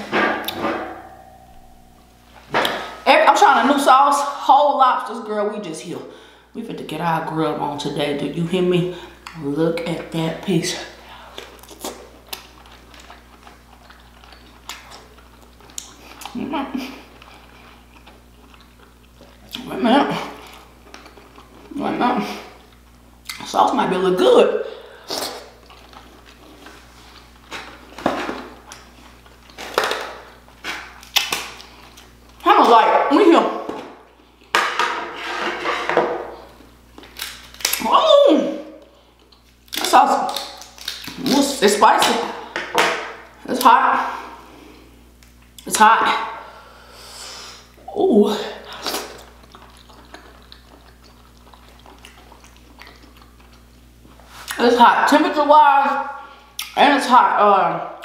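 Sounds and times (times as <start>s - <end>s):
steady low hum: 0.0s - 58.0s
chewing and mouth smacks: 11.3s - 19.7s, 20.3s - 21.7s, 25.1s - 32.4s, 39.1s - 41.3s, 48.7s - 54.6s.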